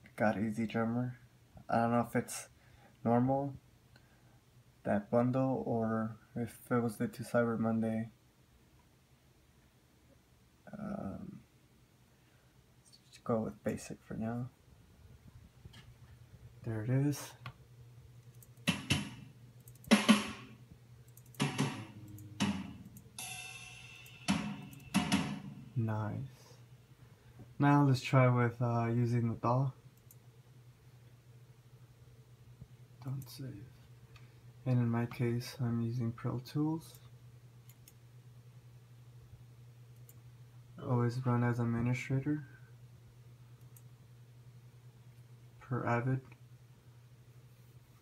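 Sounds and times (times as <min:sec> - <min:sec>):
steady low hum: 0:00.0 - 0:48.0
drum hits: 0:18.7 - 0:19.3, 0:19.9 - 0:20.6, 0:21.4 - 0:25.9
computer mouse clicks: 0:19.6 - 0:20.0, 0:21.1 - 0:23.1
ringing cymbal hit: 0:21.4 - 0:25.8.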